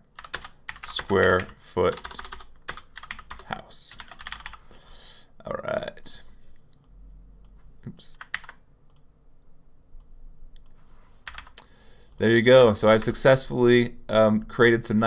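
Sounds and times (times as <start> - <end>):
computer keyboard typing: 0.1 - 4.6, 8.2 - 9.1, 11.2 - 12.3.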